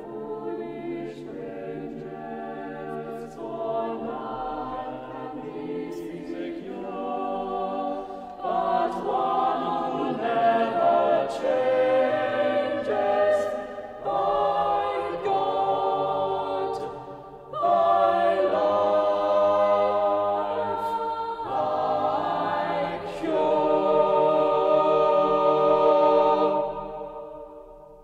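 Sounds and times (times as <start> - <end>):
choir singing: 0.0 - 28.0.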